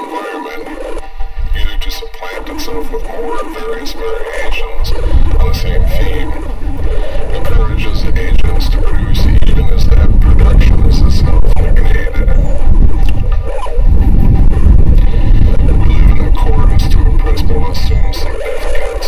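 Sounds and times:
smeared voice-like layer: 0:00.0 - 0:01.0, 0:01.6 - 0:19.0
dense low rumble: 0:00.9 - 0:19.0.

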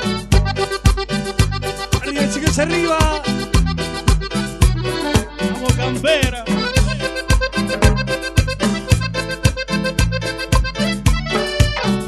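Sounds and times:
accordion melody: 0:00.0 - 0:12.0
bass: 0:00.0 - 0:12.0
steady percussion beat: 0:00.3 - 0:12.0.

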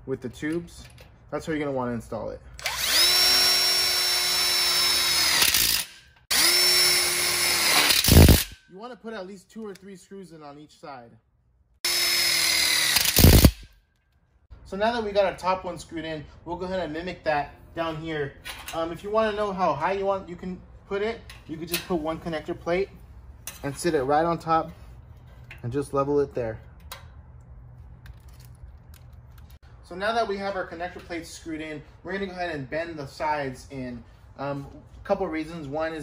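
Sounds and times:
impact driver whining: 0:02.6 - 0:08.6, 0:11.9 - 0:13.6.

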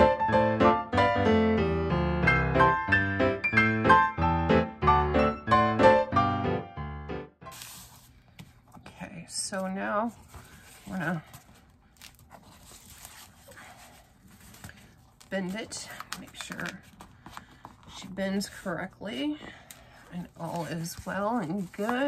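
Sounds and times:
piano music: 0:00.0 - 0:07.6
paper rustling and tapping: 0:14.2 - 0:18.0, 0:19.4 - 0:22.0.

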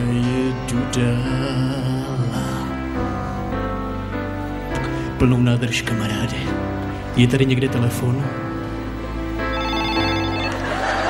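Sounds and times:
backing music: 0:00.0 - 0:11.0
telephone ringing: 0:09.4 - 0:11.0.

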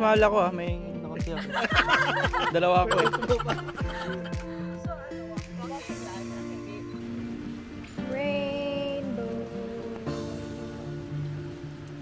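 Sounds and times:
rain falling: 0:00.1 - 0:12.0.

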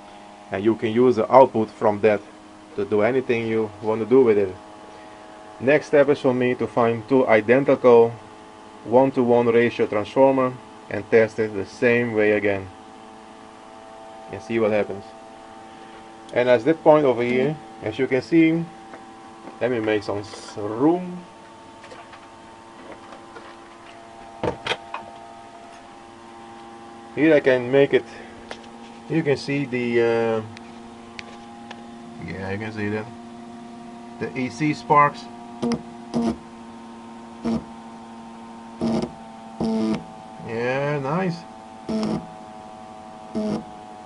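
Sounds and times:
motor generator humming: 0:00.0 - 0:44.0.

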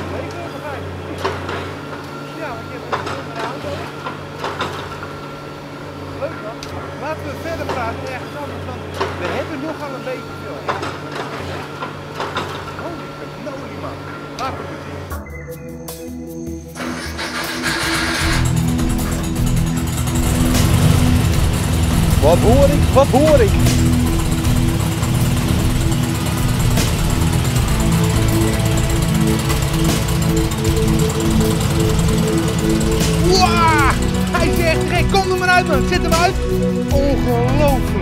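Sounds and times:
construction machinery drone: 0:00.0 - 0:38.0
music playing: 0:12.7 - 0:38.0
car engine running: 0:16.8 - 0:38.0
thin steady whine: 0:18.5 - 0:36.8.

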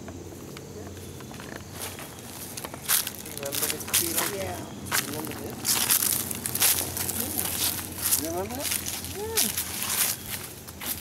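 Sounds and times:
faint voices: 0:00.4 - 0:10.5
footsteps on dry leaves: 0:01.0 - 0:11.0.

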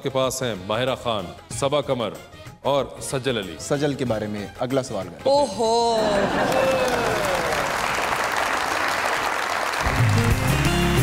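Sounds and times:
applause: 0:06.1 - 0:11.0.

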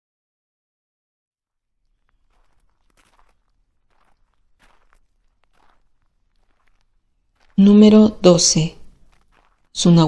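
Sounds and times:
faint rustling scuffs: 0:02.0 - 0:09.9.

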